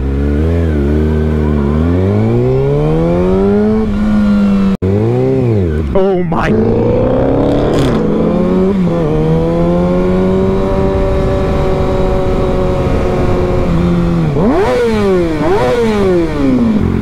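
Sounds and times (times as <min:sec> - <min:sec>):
motorcycle engine revving: 0:00.0 - 0:17.0
wind noise: 0:06.6 - 0:16.7.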